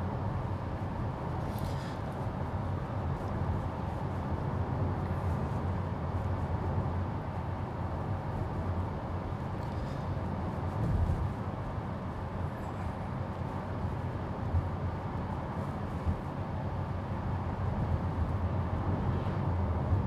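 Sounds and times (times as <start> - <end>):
road and tyre noise in car cabin: 0.0 - 20.0.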